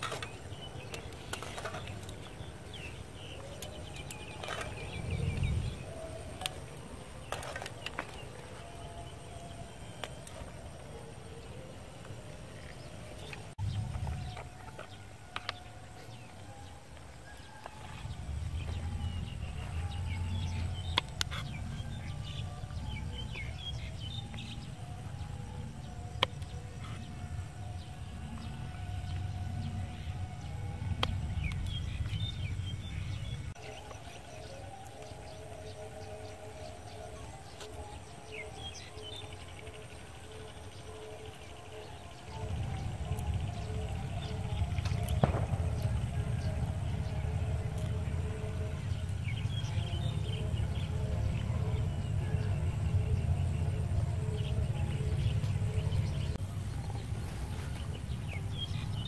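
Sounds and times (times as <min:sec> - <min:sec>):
wind buffeting microphone: 0:00.0 - 0:33.8
bird chirps: 0:00.0 - 0:59.0
faint pulsing hum: 0:18.0 - 0:59.0.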